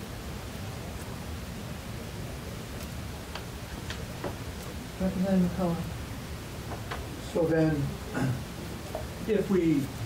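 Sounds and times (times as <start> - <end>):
faint clicks: 2.8 - 4.8.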